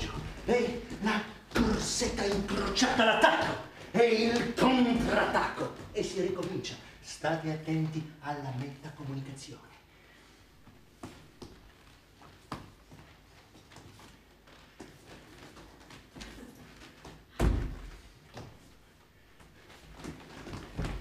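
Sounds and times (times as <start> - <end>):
footsteps stamping on stage floor: 0.0 - 6.7, 19.4 - 21.0.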